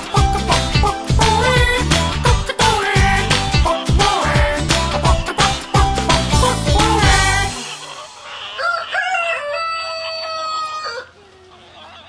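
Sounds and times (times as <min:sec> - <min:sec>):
rooster crowing: 0:07.6 - 0:11.6.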